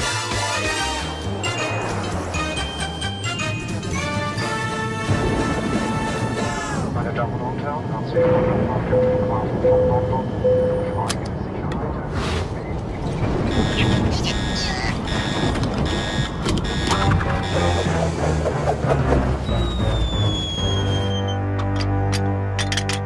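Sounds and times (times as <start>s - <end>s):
rapid high beeping: 13.4s - 18.1s
character's voice: 14.0s - 15.0s
cartoon music: 16.8s - 18.6s, 19.2s - 21.4s
high whistle gliding downward: 19.4s - 21.4s.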